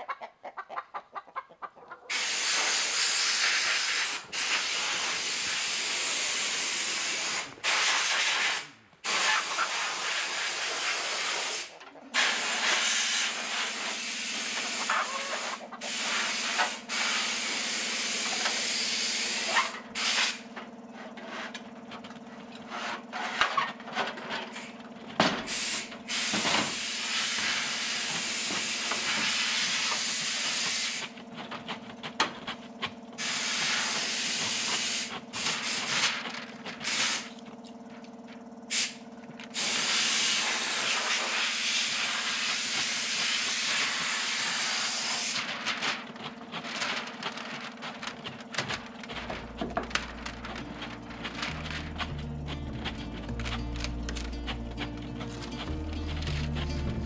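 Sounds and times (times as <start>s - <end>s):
steady low hum: 45.3s - 57.0s.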